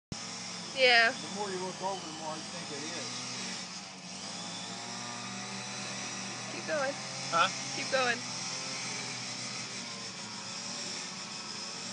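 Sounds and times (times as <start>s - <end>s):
mechanical hum: 0.2s - 11.9s.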